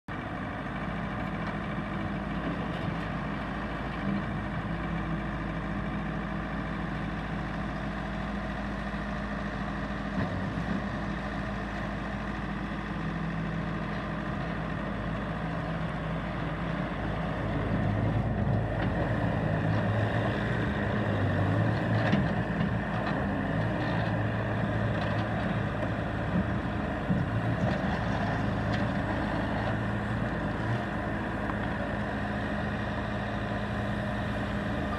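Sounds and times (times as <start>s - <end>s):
skid-steer loader diesel engine: 0.1s - 34.9s.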